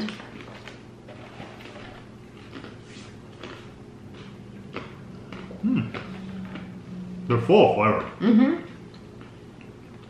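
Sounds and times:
crunchy snack bar being chewed: 0.0s - 6.7s
low steady hum: 0.0s - 10.0s.

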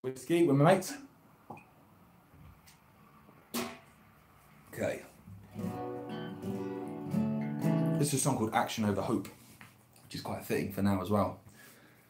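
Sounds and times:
acoustic guitar strumming: 5.4s - 8.3s.

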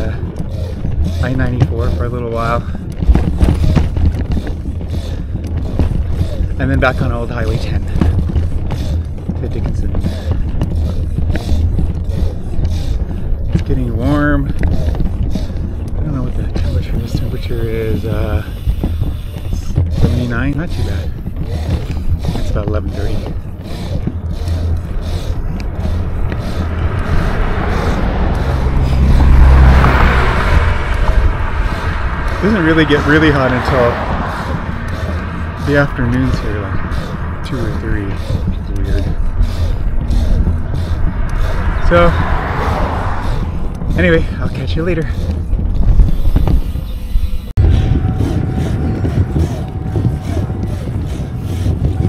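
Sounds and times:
bicycle road noise: 0.0s - 52.0s
car passing: 0.0s - 52.0s
wind buffeting microphone: 0.0s - 52.0s.

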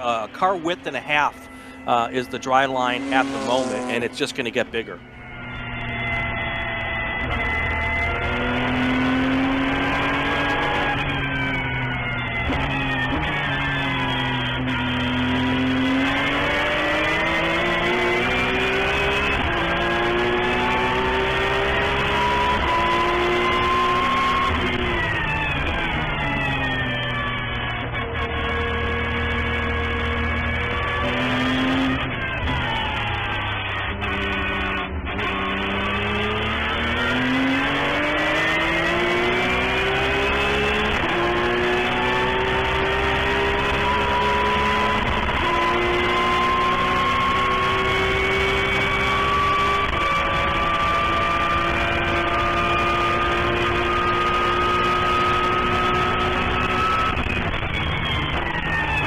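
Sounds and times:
race car engine: 0.0s - 59.0s.

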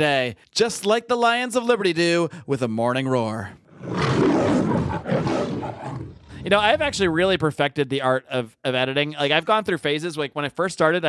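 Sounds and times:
lion roar: 3.7s - 7.2s.

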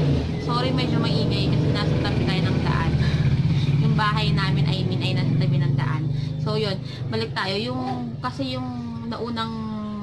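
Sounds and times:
vehicle engine running: 0.0s - 10.0s.

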